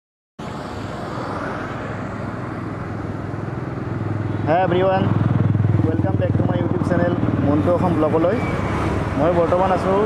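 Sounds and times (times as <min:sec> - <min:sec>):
rush of air and road noise: 0:00.4 - 0:10.0
motorcycle engine running: 0:04.0 - 0:08.1.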